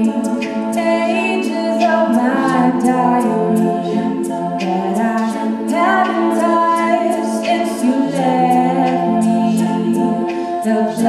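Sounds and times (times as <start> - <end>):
female group singing chords: 0.0 - 11.0
vocal percussion ticks: 0.0 - 11.0.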